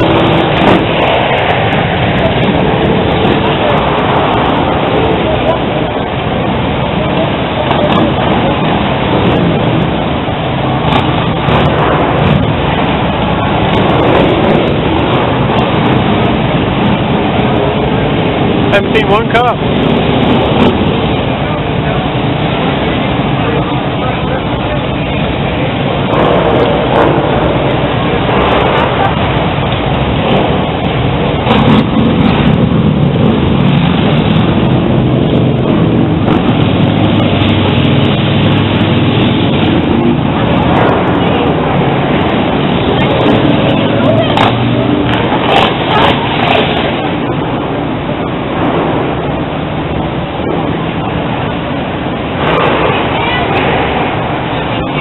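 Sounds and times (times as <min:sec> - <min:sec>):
indistinct voices: 0:00.0 - 0:55.0
motor vehicles passing: 0:00.0 - 0:55.0.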